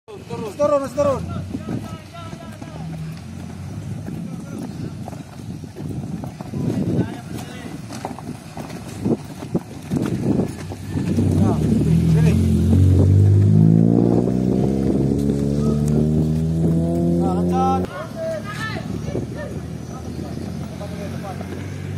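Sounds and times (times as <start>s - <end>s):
vehicle engine running: 0.2s - 7.1s, 10.0s - 21.9s.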